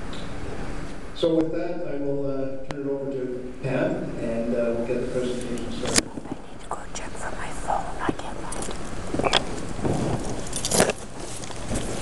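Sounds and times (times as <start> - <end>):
microphone handling rustles: 4.9 - 6.7, 8.1 - 12.0
sharp microphone clicks: 5.4 - 6.8, 8.0 - 12.0.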